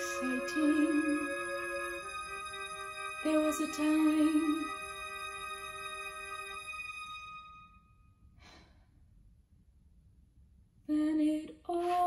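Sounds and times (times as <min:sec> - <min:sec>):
woman inhaling: 0:08.4 - 0:09.0.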